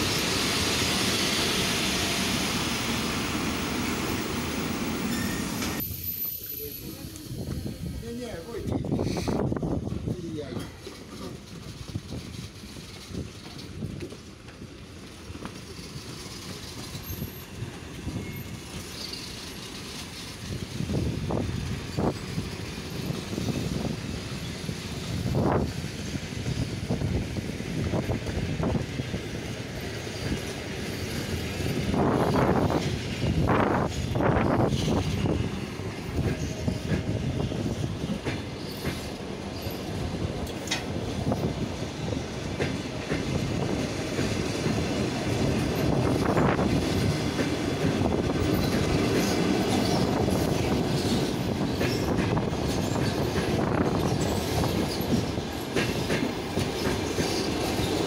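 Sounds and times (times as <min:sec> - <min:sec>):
train wheels clattering over rails: 0:08.6 - 0:58.0.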